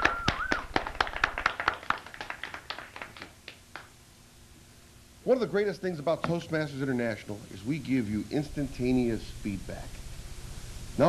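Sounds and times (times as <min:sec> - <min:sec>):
audience clapping: 0:00.0 - 0:04.0.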